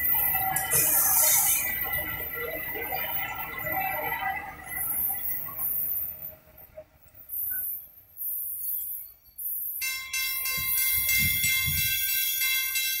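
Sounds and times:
freight train wagons rumbling: 0:00.0 - 0:13.0
music with bell-like tones: 0:09.8 - 0:13.0.

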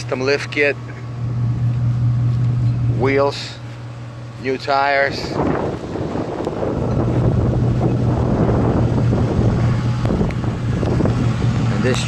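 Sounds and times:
truck engine idling: 0:00.0 - 0:12.0
wind rumble on microphone: 0:04.5 - 0:12.0.

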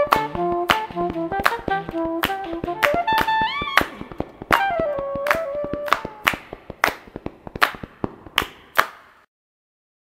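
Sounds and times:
saxophone long note: 0:00.0 - 0:06.3.

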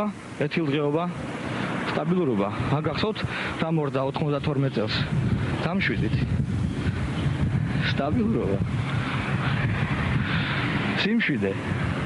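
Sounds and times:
wind buffeting microphone: 0:01.1 - 0:12.0.

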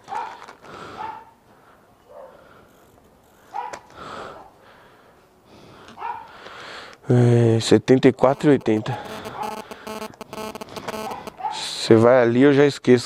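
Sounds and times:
dog barking: 0:00.1 - 0:00.4, 0:01.0 - 0:01.4, 0:02.1 - 0:02.4, 0:03.5 - 0:04.5, 0:06.0 - 0:06.3, 0:11.1 - 0:11.7.

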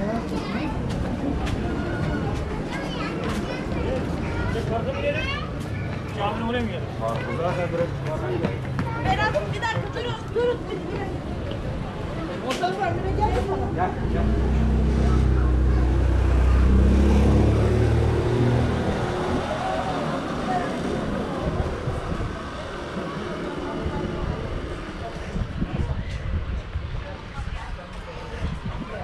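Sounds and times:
murmur of street voices: 0:00.0 - 0:29.0
vehicle engine droning: 0:11.9 - 0:25.6.

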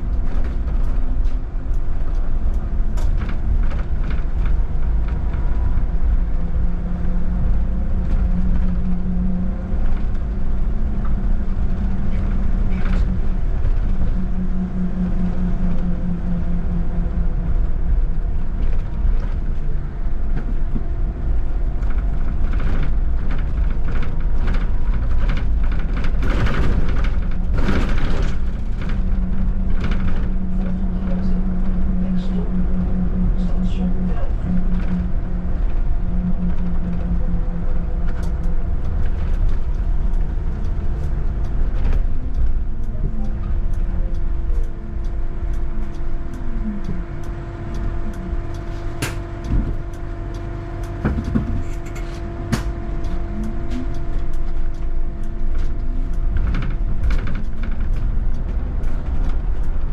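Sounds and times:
bus road and tyre rumble: 0:00.0 - 0:59.9
electric motor humming tones: 0:27.3 - 0:59.9.

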